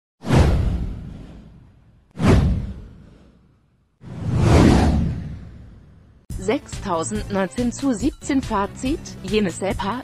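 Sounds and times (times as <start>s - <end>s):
whoosh sweeping onto deep rumble: 0.2s - 6.3s.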